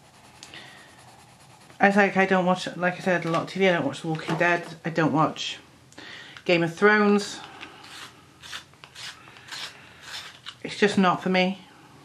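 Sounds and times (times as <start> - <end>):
coloured pencil scratching paper: 0.0 - 2.4, 7.9 - 10.4.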